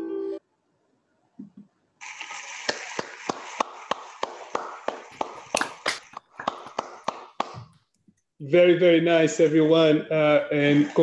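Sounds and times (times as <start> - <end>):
people clapping: 2.6 - 7.7.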